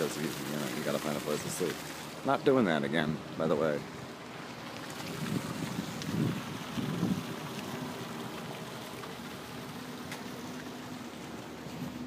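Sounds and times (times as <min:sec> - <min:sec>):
wind on microphone: 0:05.0 - 0:07.5.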